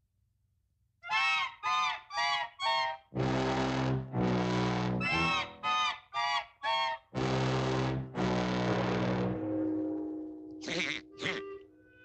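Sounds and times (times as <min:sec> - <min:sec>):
cartoon duck squawking: 0:10.6 - 0:11.6.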